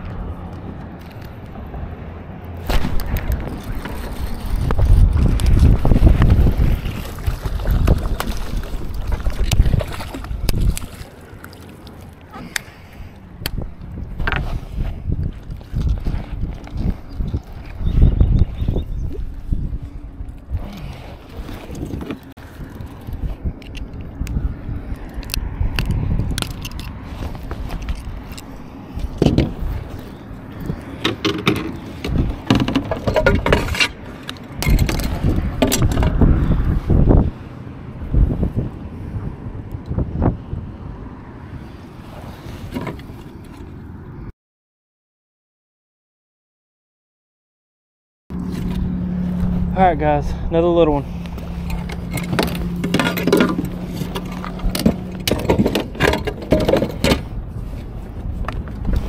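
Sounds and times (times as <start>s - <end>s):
knocks and scrapes on kayak: 2.6s - 12.6s, 14.0s - 23.4s, 26.4s - 37.0s, 42.0s - 43.8s, 51.0s - 59.0s.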